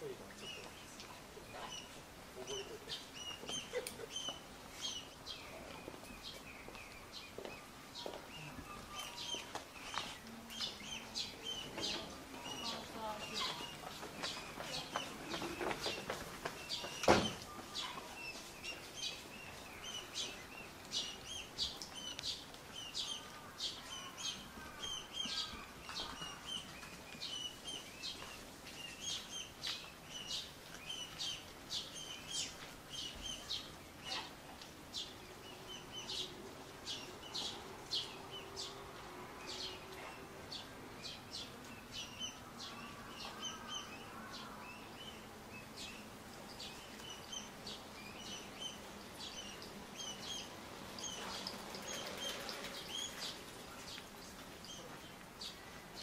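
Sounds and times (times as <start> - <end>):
bird chirping: 0.0 - 56.0
faint outdoor background noise: 0.0 - 56.0.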